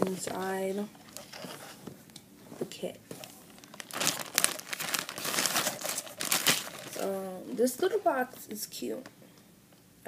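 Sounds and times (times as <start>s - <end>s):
plastic shrink wrap crinkling: 3.1s - 8.0s.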